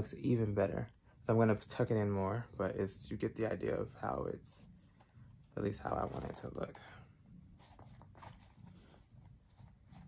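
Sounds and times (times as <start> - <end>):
hands rustling leather clutch: 7.5 - 10.0.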